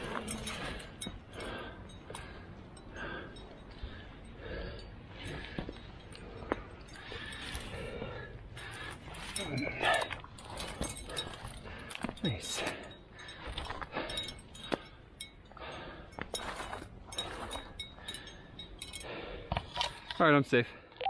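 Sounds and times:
person breathing: 0:00.0 - 0:20.1
metal climbing gear clinking: 0:00.0 - 0:20.6.

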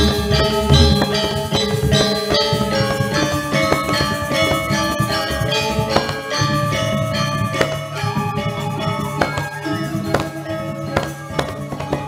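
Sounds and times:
steady low drone: 0:00.0 - 0:11.8
gamelan struck metal tones: 0:00.0 - 0:12.0.

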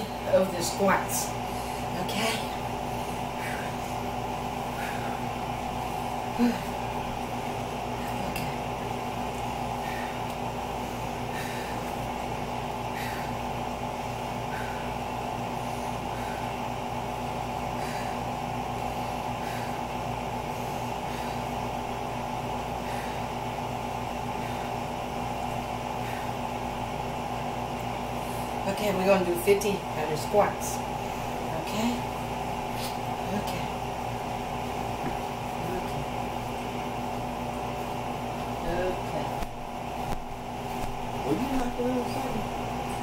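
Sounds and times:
steady mechanical hum: 0:00.0 - 0:43.0.

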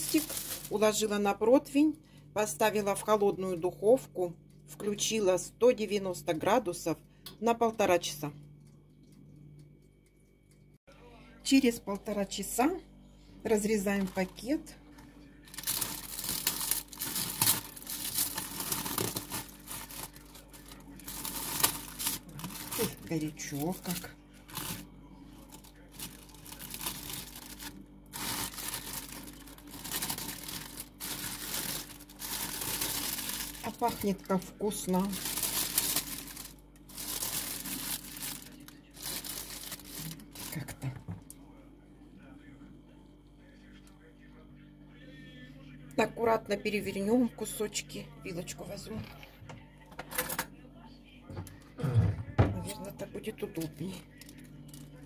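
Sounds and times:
plastic bag crinkling: 0:00.0 - 0:01.3, 0:15.5 - 0:40.8
scissors cutting plastic: 0:15.6 - 0:20.5
utensil clicks and bag rustling: 0:25.5 - 0:34.4.

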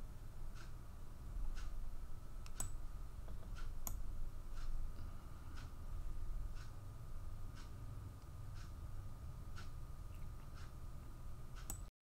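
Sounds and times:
faint even ticking: 0:00.0 - 0:11.9
low steady hum: 0:00.0 - 0:11.9
sharp clicks: 0:02.4 - 0:04.7, 0:11.6 - 0:11.9.

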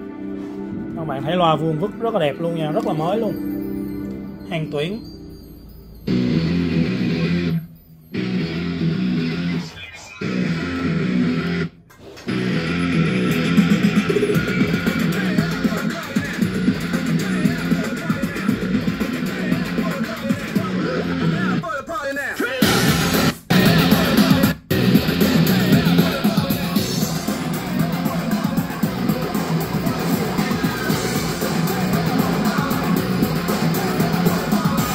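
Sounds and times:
guitar music through speakers: 0:00.0 - 0:21.6, 0:22.6 - 0:34.9.

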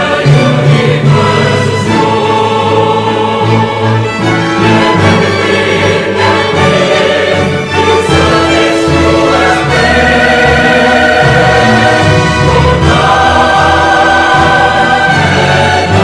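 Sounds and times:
choir singing a hymn: 0:00.0 - 0:16.0
instrumental accompaniment: 0:00.0 - 0:16.0.

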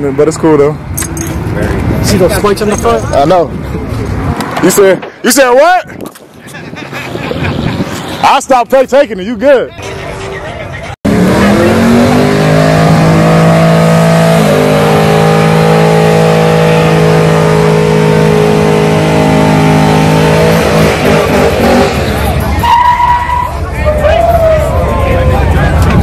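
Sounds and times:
crowd noise: 0:05.9 - 0:12.0, 0:20.3 - 0:26.0
car engine at high revs: 0:11.0 - 0:22.5.

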